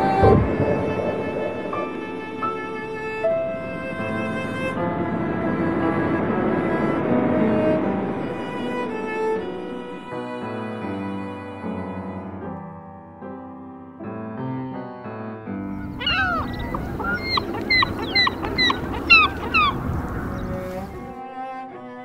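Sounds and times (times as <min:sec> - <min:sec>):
surf breaking: 0:00.0 - 0:10.0, 0:15.8 - 0:21.2
cello-led string music: 0:00.0 - 0:13.4, 0:15.6 - 0:22.0
birds honking: 0:15.7 - 0:21.2.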